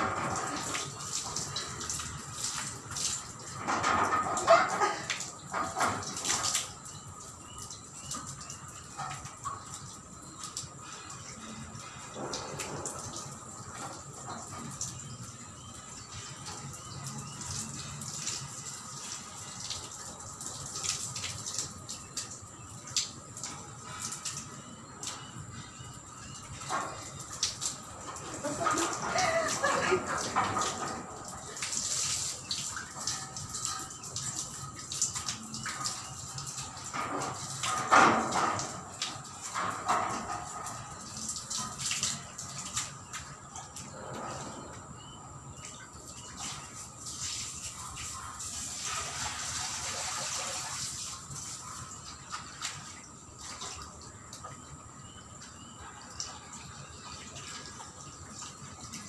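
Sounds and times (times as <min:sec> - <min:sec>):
hose water splashing on metal grille: 0:00.0 - 0:59.0.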